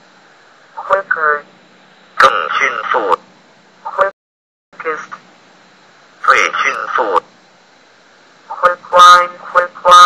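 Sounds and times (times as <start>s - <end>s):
text-to-speech voice reading words: 0.8s - 1.5s, 2.2s - 4.1s, 4.8s - 5.3s, 6.2s - 7.3s, 8.5s - 10.0s.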